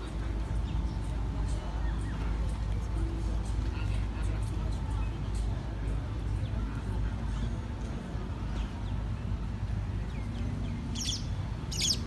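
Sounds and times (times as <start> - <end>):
small birds chirping: 10.0 - 12.0.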